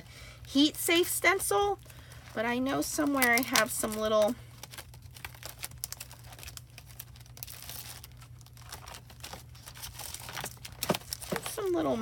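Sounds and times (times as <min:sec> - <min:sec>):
plastic sleeves rustling: 0:00.0 - 0:12.0.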